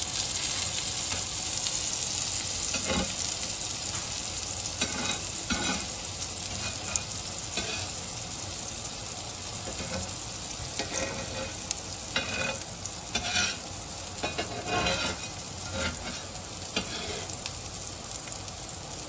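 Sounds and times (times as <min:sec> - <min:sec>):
patties sizzling in oil: 0:00.0 - 0:19.0
metal spatula scraping a pan: 0:02.7 - 0:03.2, 0:04.8 - 0:05.9, 0:06.5 - 0:08.0, 0:09.7 - 0:10.1, 0:10.8 - 0:13.6, 0:14.2 - 0:17.4.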